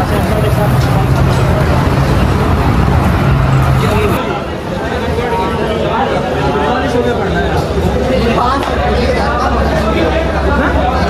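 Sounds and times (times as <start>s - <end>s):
background voices: 0.0s - 4.2s
low motor hum: 0.0s - 4.2s.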